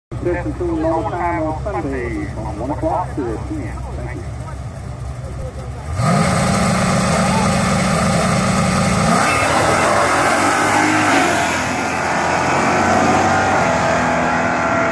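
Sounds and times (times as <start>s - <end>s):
drag car engine revving: 0.1s - 14.9s.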